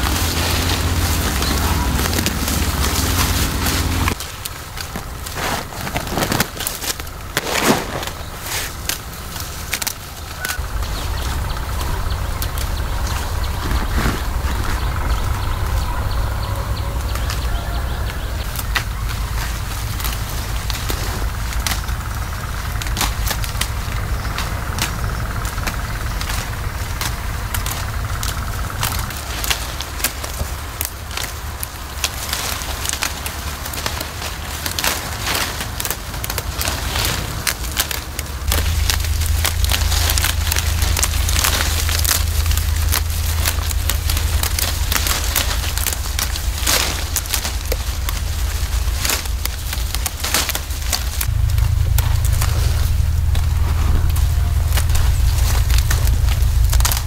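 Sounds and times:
leaves rustling: 0.0 - 57.0
steady low rumble: 0.0 - 57.0
snaps of shoots being plucked: 22.7 - 57.0.

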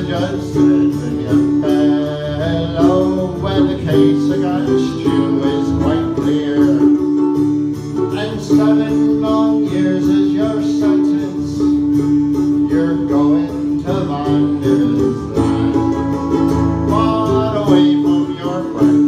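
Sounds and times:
acoustic guitars playing folk music: 0.0 - 19.0.

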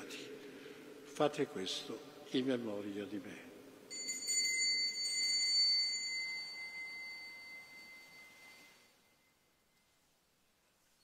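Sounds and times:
small bell ringing: 3.9 - 9.7.

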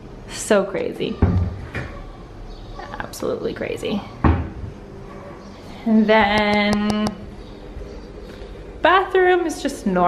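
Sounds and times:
cabinet door shutting with thud: 4.2 - 4.7.

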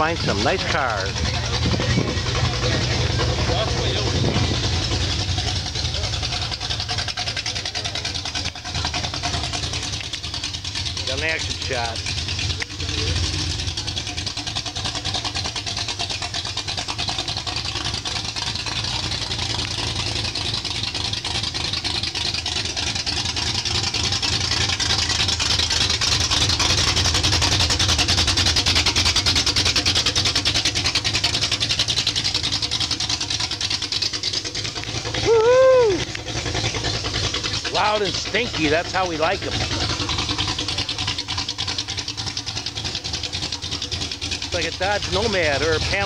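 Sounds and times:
car engine and exhaust driving by: 0.0 - 46.0.

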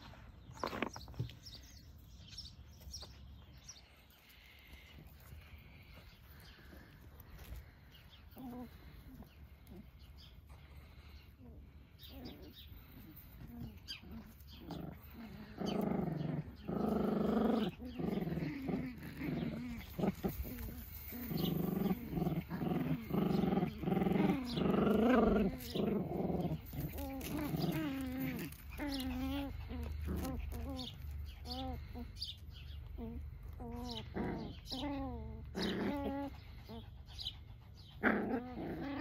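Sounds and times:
puppies growling: 0.0 - 39.0
puppy high wavering calls: 32.9 - 37.5.

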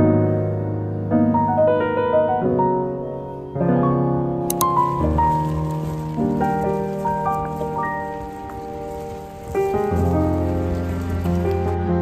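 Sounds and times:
gentle piano music: 0.0 - 12.0.

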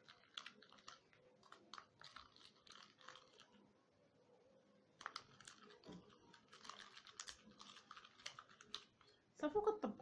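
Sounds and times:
plastic spoon stirring paste: 0.0 - 4.0, 4.7 - 9.5.

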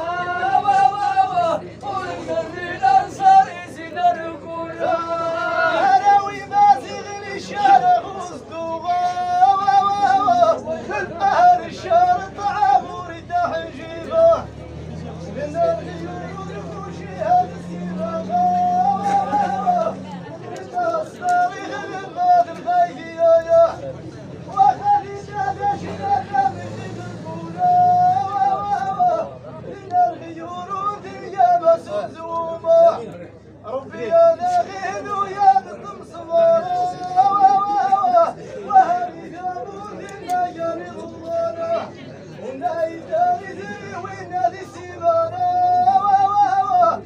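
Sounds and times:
man singing high: 0.0 - 33.1, 33.8 - 47.0
crowd murmuring: 0.0 - 47.0.

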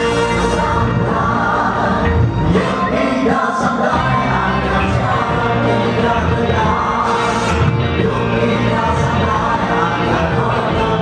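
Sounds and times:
electric guitar: 0.0 - 11.0
live band playing: 0.0 - 11.0
male lead vocalist singing: 0.0 - 11.0.

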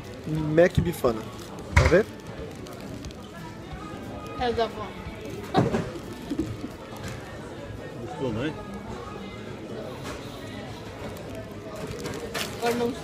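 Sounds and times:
background music: 0.0 - 13.0
murmur of voices: 0.0 - 13.0.

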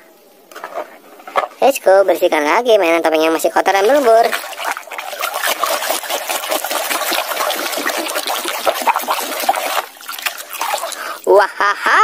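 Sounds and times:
water sloshing in a tub: 2.6 - 11.3
scrubbing plastic mask underwater: 3.2 - 11.3.

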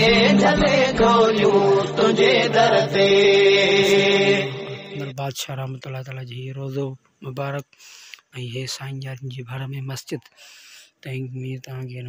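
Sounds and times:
man singing devotional chant: 0.0 - 5.2.

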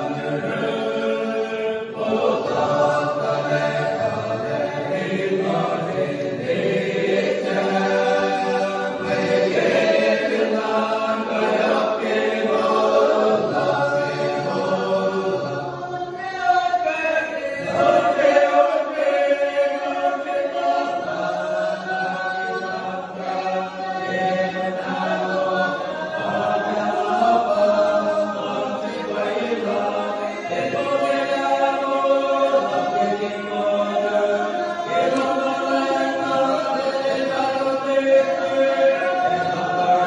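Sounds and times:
men's choir singing: 0.0 - 40.0.

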